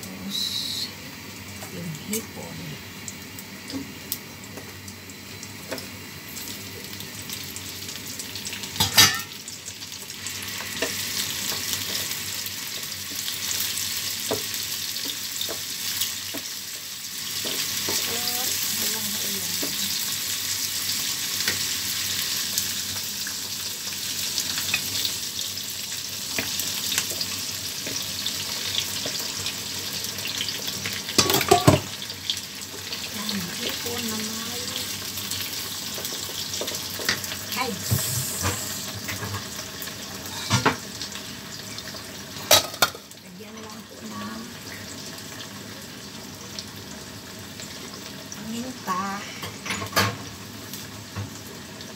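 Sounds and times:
shrimp sizzling in hot oil: 0:00.0 - 0:51.9.

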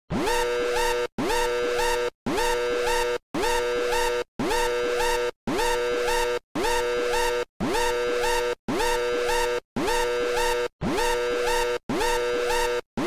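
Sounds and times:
electronic klaxon whooping: 0:00.1 - 0:13.0.

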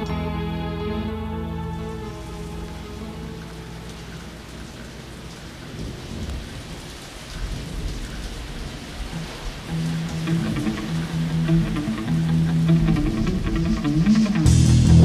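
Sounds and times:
band music: 0:00.0 - 0:04.4, 0:10.2 - 0:15.0
held music chord: 0:00.0 - 0:05.2
rain falling: 0:00.0 - 0:15.0
thunder rumbling: 0:01.6 - 0:15.0.

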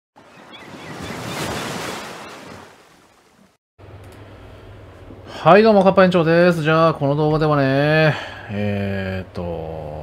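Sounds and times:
ocean surf rushing: 0:00.3 - 0:03.5.

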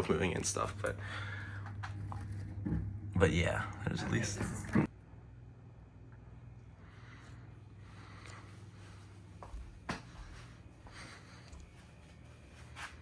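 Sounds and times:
faint low hum: 0:00.0 - 0:13.0.

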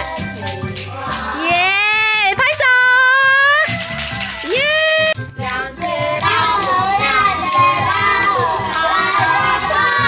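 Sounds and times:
recorded children's song: 0:00.0 - 0:03.4, 0:04.2 - 0:10.0
children singing together: 0:05.5 - 0:10.0.

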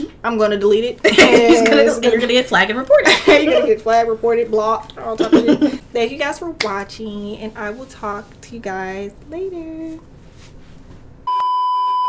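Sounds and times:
faint room noise: 0:00.0 - 0:11.3
steady test tone beep: 0:11.3 - 0:12.0.

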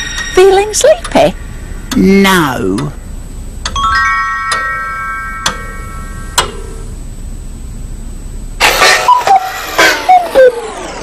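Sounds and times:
bell-like chimes: 0:00.0 - 0:01.0, 0:03.8 - 0:06.4
low hum: 0:00.0 - 0:11.0
loud burst of noise: 0:08.6 - 0:11.0.

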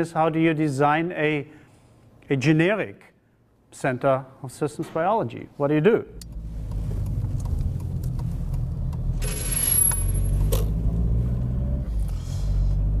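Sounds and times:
car engine and road noise: 0:06.2 - 0:13.0.

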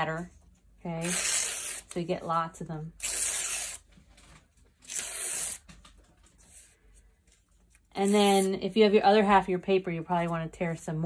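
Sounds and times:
paper tearing: 0:01.0 - 0:02.0, 0:03.0 - 0:03.9, 0:04.7 - 0:05.8, 0:07.7 - 0:08.5
faint paper handling: 0:03.8 - 0:08.5.

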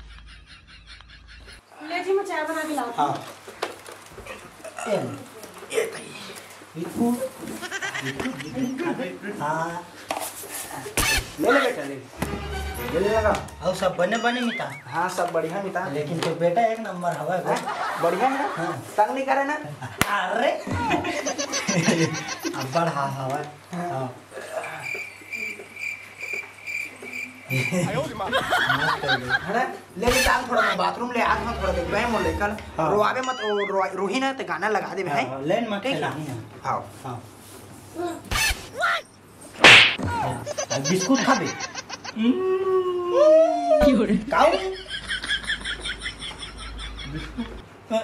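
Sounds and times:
cricket chirping: 0:24.5 - 0:28.9.

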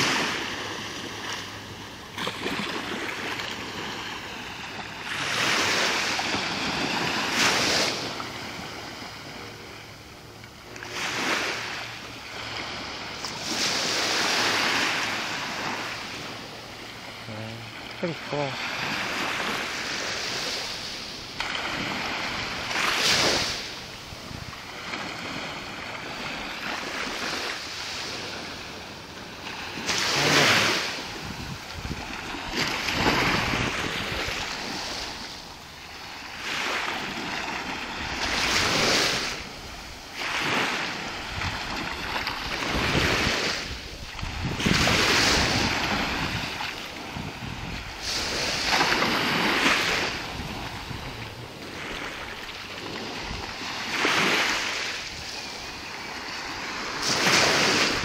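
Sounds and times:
small waves breaking on shore: 0:00.0 - 0:58.0.

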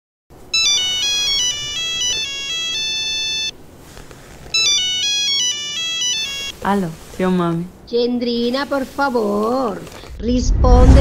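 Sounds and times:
polyphonic phone ringtone: 0:00.5 - 0:07.0.

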